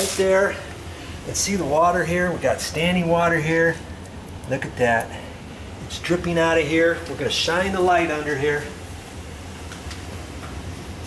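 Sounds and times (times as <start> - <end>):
air handler hum and hiss: 0.0 - 11.0.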